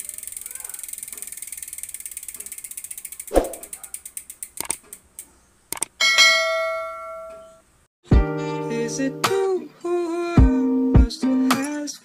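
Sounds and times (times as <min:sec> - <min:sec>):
bicycle freehub clicking: 0:00.0 - 0:05.9.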